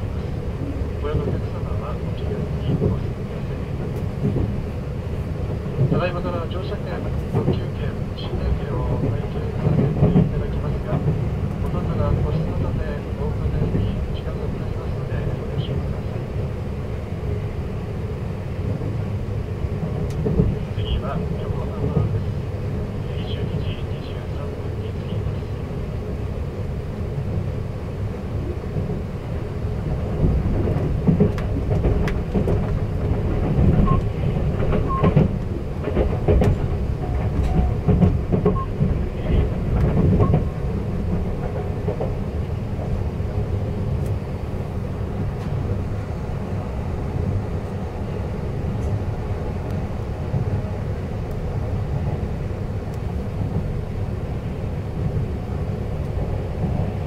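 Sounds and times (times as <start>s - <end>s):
passing train: 0.0s - 57.0s
train wheels rumbling on rail: 0.0s - 57.0s.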